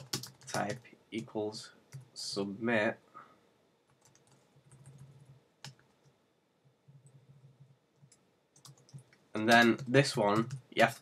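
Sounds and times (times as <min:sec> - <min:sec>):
computer keyboard keystrokes: 0:00.0 - 0:00.8, 0:03.9 - 0:05.9, 0:08.0 - 0:11.0
faint low hum: 0:00.0 - 0:11.0.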